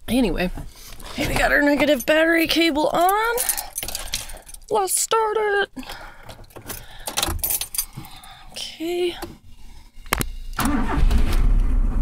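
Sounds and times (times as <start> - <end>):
car engine cranking and running: 10.1 - 12.0.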